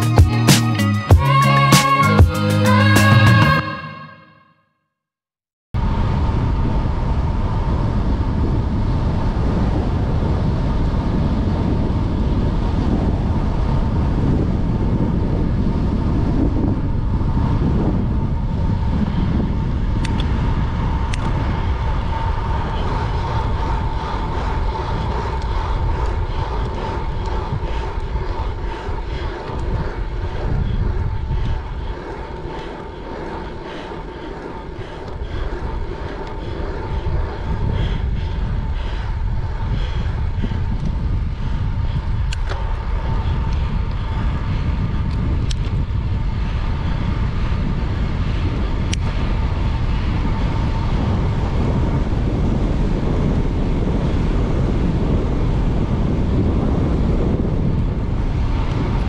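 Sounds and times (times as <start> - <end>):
steady high whine: 5.8 - 59.0
wind rushing over microphone: 5.8 - 59.0.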